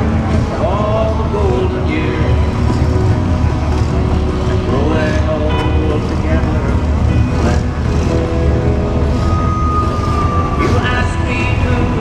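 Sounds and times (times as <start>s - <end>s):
background music: 0.0s - 12.0s
motorcycle engine rumbling: 0.0s - 12.0s.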